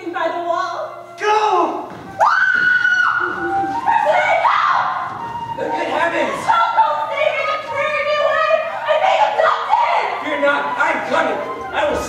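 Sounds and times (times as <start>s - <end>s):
high-pitched scream: 2.2s - 3.4s.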